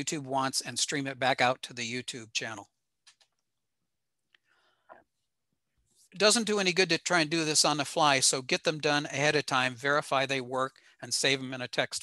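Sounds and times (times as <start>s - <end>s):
soft breathy sound: 4.3s - 5.3s.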